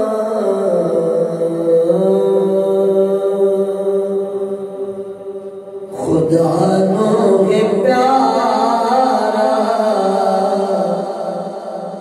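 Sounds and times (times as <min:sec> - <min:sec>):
man singing a chant: 0:00.0 - 0:12.0.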